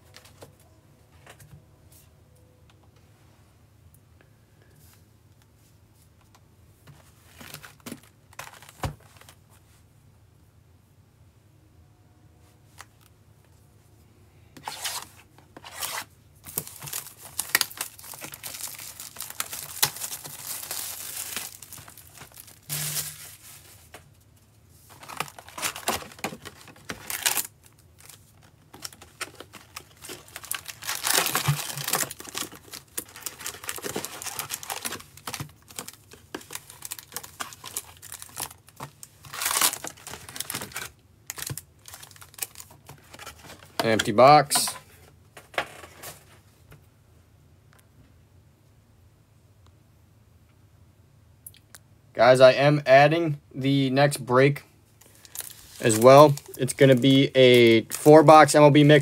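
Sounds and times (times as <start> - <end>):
foil packs rustling: 7.1 - 9.4, 14.6 - 24.2, 24.8 - 44.8, 55.0 - 59.0
shrink-wrap tearing and crumpling: 15.6 - 23.6, 24.9 - 43.5, 55.0 - 58.3.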